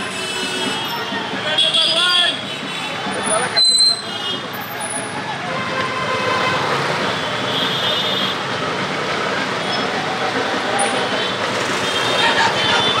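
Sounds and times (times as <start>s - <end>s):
street traffic: 0.0s - 13.0s.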